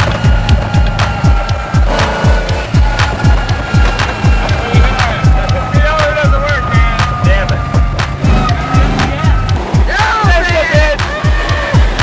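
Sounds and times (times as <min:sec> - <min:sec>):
deep bass kicks: 0:00.0 - 0:11.0
wavering melody: 0:00.0 - 0:12.0.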